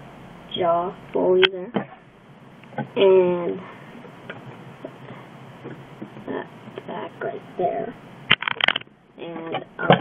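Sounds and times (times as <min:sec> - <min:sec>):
low steady hiss: 0:00.0 - 0:10.0.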